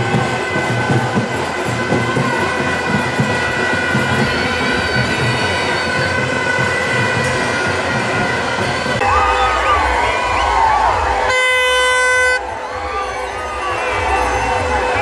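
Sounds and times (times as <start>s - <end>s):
festival crowd din: 0.0s - 15.0s
music: 0.0s - 15.0s.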